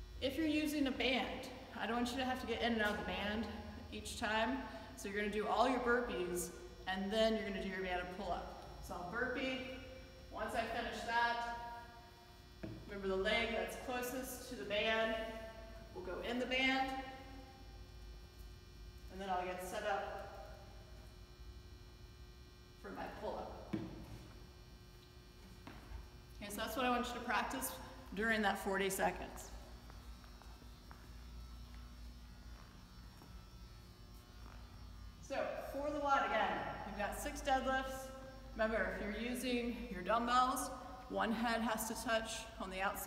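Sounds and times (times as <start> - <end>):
faint steady hum: 0.0 - 43.0
woman talking: 0.2 - 11.6, 12.9 - 15.4, 16.0 - 17.1, 19.1 - 20.4, 22.8 - 23.7, 26.4 - 29.6, 35.2 - 43.0
footsteps on rubber floor: 29.8 - 31.9.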